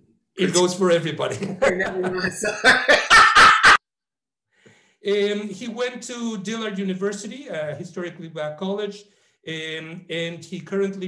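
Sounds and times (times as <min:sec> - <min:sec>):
man laughing loudly: 0:01.4 - 0:03.8.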